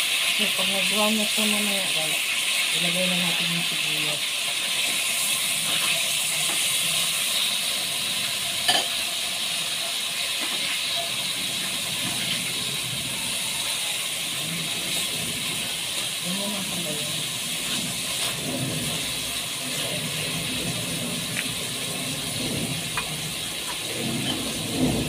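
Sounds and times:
meat sizzling in a pot: 0:00.0 - 0:25.0.

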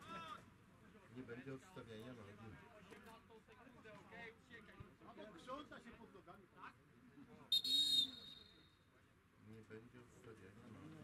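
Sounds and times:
referee's whistle blast: 0:07.5 - 0:08.6.

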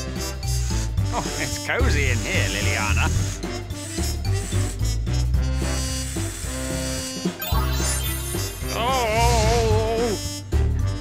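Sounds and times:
music with sustained notes: 0:00.4 - 0:11.0.

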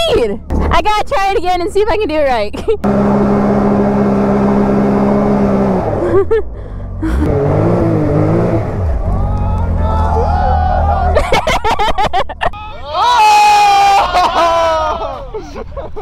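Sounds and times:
vehicle engine running: 0:02.7 - 0:12.4
people laughing: 0:06.0 - 0:07.3, 0:10.6 - 0:12.8, 0:13.5 - 0:16.0
people shouting excitedly: 0:09.1 - 0:11.3, 0:12.6 - 0:15.3.

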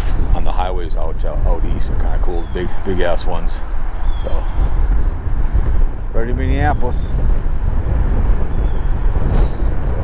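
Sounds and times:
highway traffic rumble: 0:00.0 - 0:10.0
wind buffeting microphone: 0:00.0 - 0:10.0.

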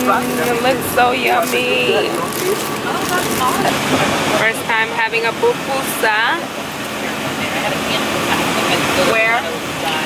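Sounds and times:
faint voices: 0:00.0 - 0:10.0
van engine and road noise: 0:00.0 - 0:10.0.

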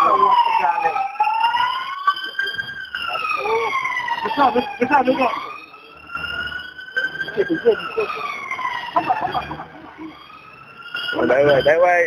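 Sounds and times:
fire engine siren wailing: 0:00.0 - 0:12.0.

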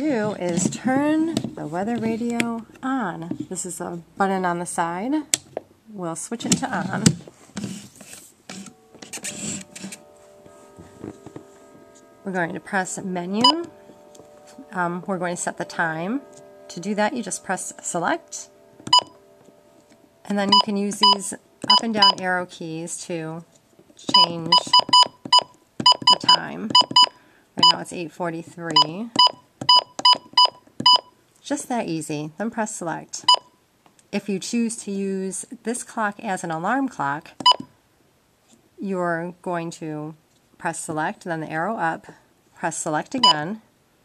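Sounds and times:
scuffing and rustling of handling: 0:06.6 - 0:12.1
faint steady electronic tone: 0:08.6 - 0:27.9
short electronic key beeps: 0:18.9 - 0:19.2.

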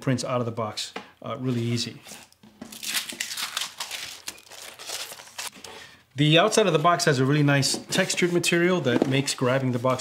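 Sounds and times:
paper rustling and crinkling: 0:01.6 - 0:05.7.

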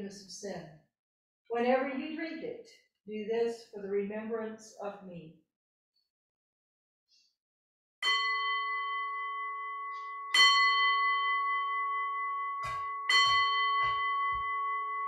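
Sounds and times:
altar bell ringing: 0:08.0 - 0:15.0.

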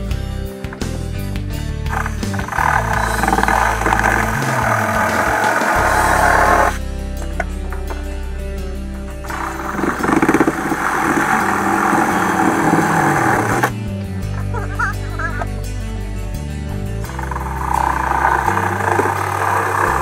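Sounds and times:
background music: 0:00.0 - 0:20.0
reciprocating saw cutting wall: 0:01.9 - 0:06.8, 0:09.2 - 0:13.7, 0:17.1 - 0:20.0.

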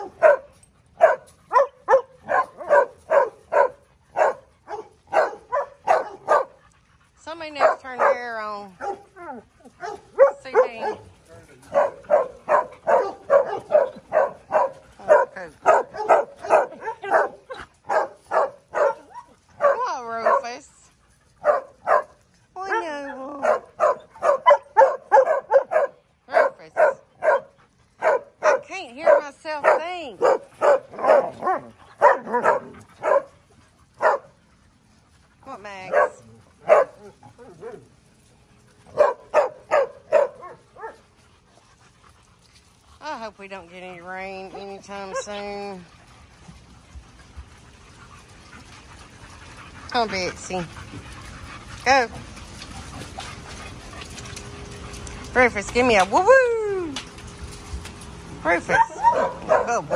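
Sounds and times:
dog barking rapidly: 0:01.0 - 0:06.5, 0:29.6 - 0:33.3, 0:58.7 - 0:59.9.

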